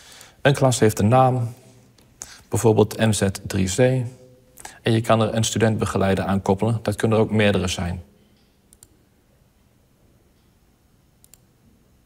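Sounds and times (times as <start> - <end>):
computer mouse clicks: 8.7 - 9.0, 11.2 - 11.5.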